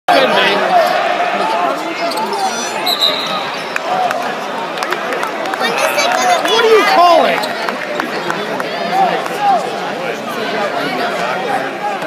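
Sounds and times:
chatter of spectators: 0:00.1 - 0:12.0.

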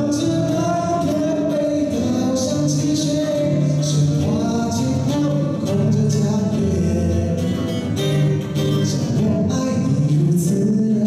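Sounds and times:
acoustic guitar: 0:00.0 - 0:11.0
man singing: 0:00.0 - 0:11.0.

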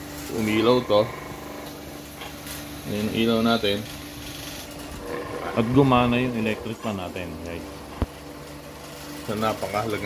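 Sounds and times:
power inverter humming: 0:00.0 - 0:10.0.

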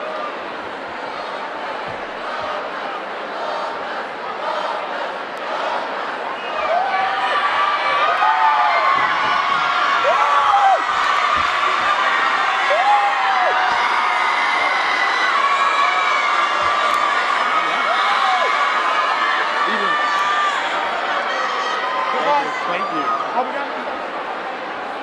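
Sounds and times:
crowd cheering and shouting: 0:00.0 - 0:25.0
loud whoops: 0:06.5 - 0:20.7.

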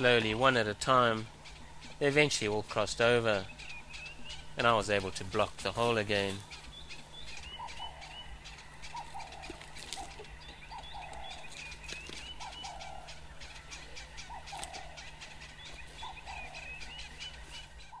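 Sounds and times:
bird chirps: 0:00.0 - 0:18.0
bird two-part call: 0:00.0 - 0:18.0
steady low hum: 0:00.0 - 0:18.0.

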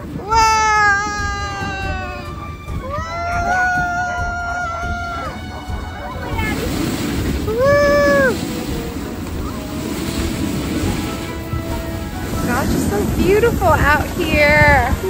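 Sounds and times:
wind on microphone: 0:00.0 - 0:15.0
high-pitched cry: 0:00.2 - 0:05.4
sled runners hissing on snow: 0:01.2 - 0:15.0.

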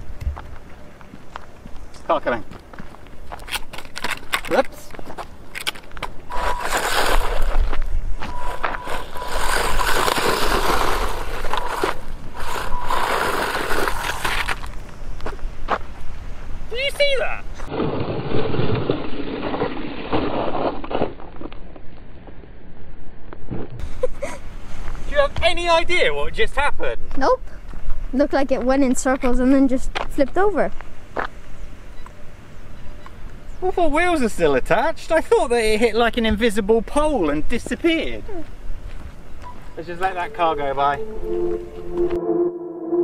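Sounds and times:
gravel crackling under tyres: 0:00.0 - 0:41.0
wind rumbling on microphone: 0:06.2 - 0:16.7
man laughing: 0:24.0 - 0:24.4.

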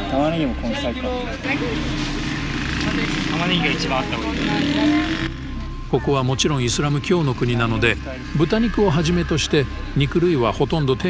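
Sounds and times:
people's voices: 0:00.0 - 0:11.0
traffic engine hum: 0:00.0 - 0:11.0.

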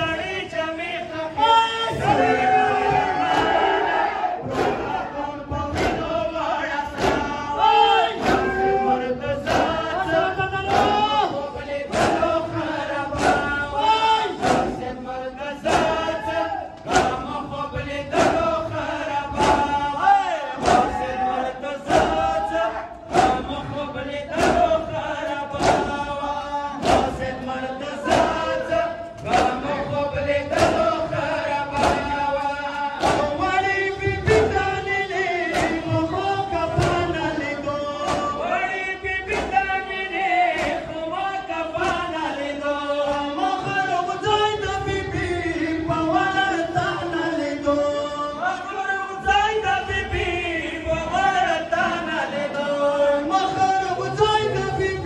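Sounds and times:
men chanting a lament: 0:00.0 - 0:55.0
men slapping their chests: 0:04.4 - 0:05.0, 0:05.7 - 0:06.3, 0:06.9 - 0:08.7, 0:09.4 - 0:14.9, 0:15.6 - 0:17.4, 0:18.1 - 0:19.9, 0:20.6 - 0:21.2, 0:21.9 - 0:26.2, 0:26.8 - 0:34.8, 0:35.4 - 0:36.0, 0:38.0 - 0:38.4, 0:39.2 - 0:39.9, 0:40.5 - 0:41.0, 0:41.8 - 0:42.2, 0:43.0 - 0:43.8.

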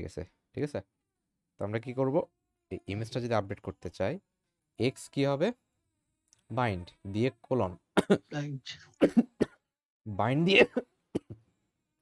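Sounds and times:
person coughing: 0:08.0 - 0:09.6, 0:10.5 - 0:11.4.

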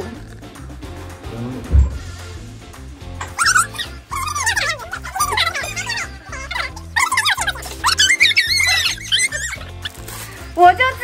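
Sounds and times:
background music with bass line: 0:00.0 - 0:11.0
young women laughing: 0:03.4 - 0:09.9.

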